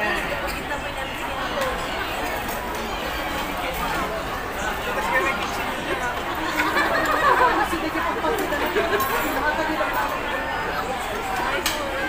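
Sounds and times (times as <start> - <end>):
babble of voices: 0.0 - 12.0.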